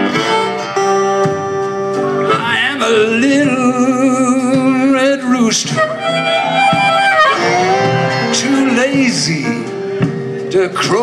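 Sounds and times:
acoustic guitar: 0.0s - 11.0s
blues harmonica: 0.0s - 11.0s
person singing: 2.1s - 11.0s.

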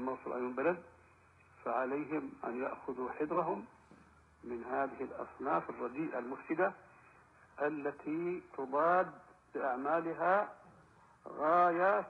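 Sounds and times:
man speaking: 0.0s - 0.9s, 1.6s - 3.7s, 4.4s - 6.8s, 7.6s - 10.6s, 11.3s - 12.0s.

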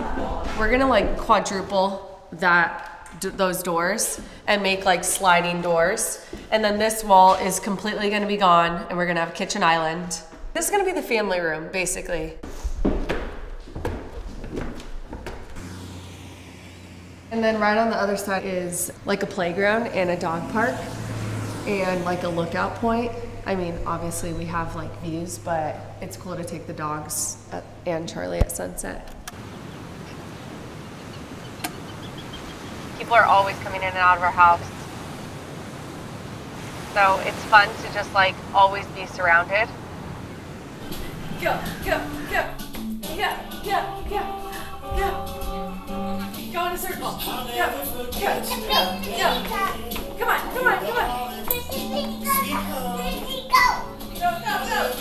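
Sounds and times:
distant traffic hum: 0.0s - 12.4s, 13.5s - 55.0s
background music: 40.8s - 55.0s
toddler's excited cries: 48.4s - 49.7s.

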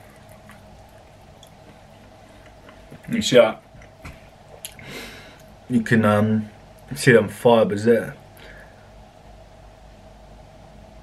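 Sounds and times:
wet chewing and tearing: 0.0s - 3.0s
low steady hum: 0.0s - 11.0s.

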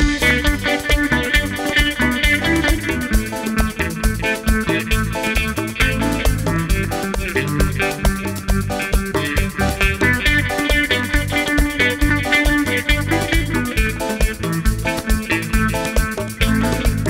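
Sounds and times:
electric guitar: 0.0s - 17.0s
live band playing dance music: 0.0s - 17.0s.

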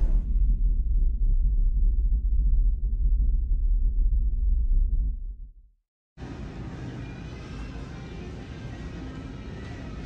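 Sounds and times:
deep low rumble: 0.0s - 5.8s.

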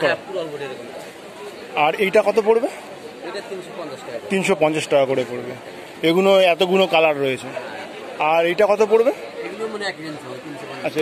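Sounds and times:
background chatter: 0.0s - 11.0s
people talking: 0.0s - 11.0s.

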